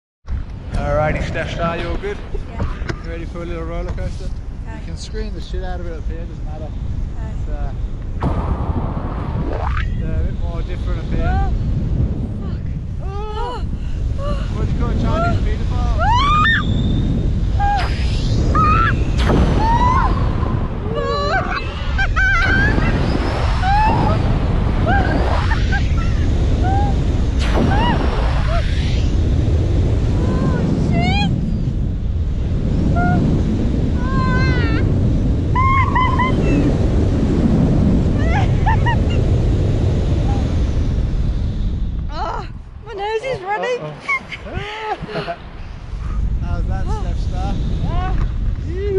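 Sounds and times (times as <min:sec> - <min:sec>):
strong wind on microphone: 0:00.3 - 0:48.9
woman screaming: 0:16.0 - 0:16.6, 0:19.6 - 0:23.0, 0:23.6 - 0:24.2, 0:27.6 - 0:28.7, 0:34.0 - 0:34.8, 0:35.5 - 0:36.7.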